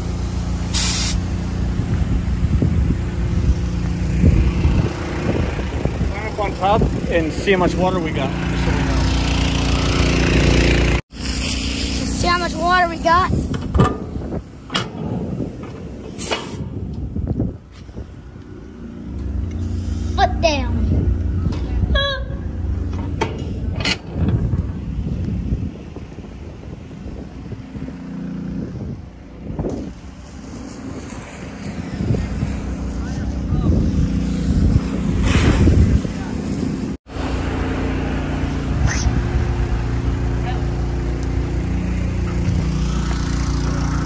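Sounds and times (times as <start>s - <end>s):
hose spraying water: 0.0s - 20.7s, 29.7s - 33.2s, 33.9s - 44.0s
voices: 11.9s - 13.6s
metal knocks and clanks: 13.5s - 16.8s, 22.8s - 24.7s
truck engine running: 36.1s - 44.0s.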